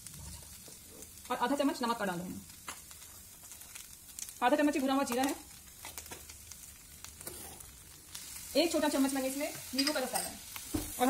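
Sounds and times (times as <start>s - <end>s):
food frying in a pan: 0.0s - 11.0s.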